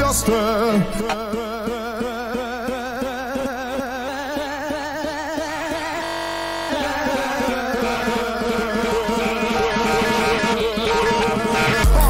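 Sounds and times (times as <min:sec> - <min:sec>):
held synth chord: 0:00.0 - 0:12.0
breakcore electronic music: 0:04.4 - 0:12.0.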